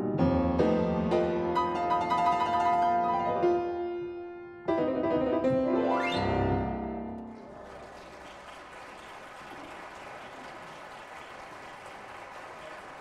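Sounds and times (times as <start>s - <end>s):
piano chord: 0.0s - 7.4s
audience applauding: 7.3s - 13.0s.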